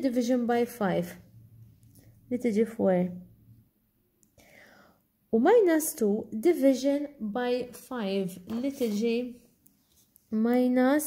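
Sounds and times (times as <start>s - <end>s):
woman speaking: 0.0s - 1.3s, 2.3s - 3.3s, 5.3s - 9.5s, 10.3s - 11.0s.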